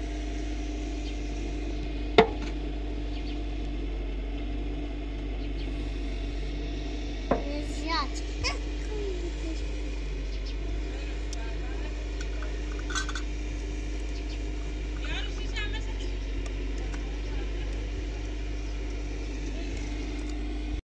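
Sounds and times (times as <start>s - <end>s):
low background hum: 0.0s - 20.8s
metal spoon clinking glass jar: 12.2s - 13.3s.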